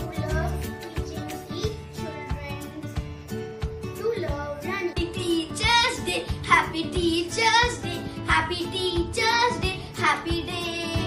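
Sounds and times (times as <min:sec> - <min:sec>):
child singing: 0:00.0 - 0:03.0, 0:04.0 - 0:11.0
backing music with a beat: 0:00.0 - 0:11.0.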